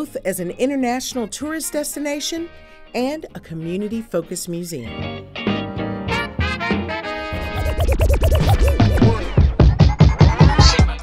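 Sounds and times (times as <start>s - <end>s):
bass line: 7.3s - 9.8s
turntable scratching: 7.4s - 9.8s.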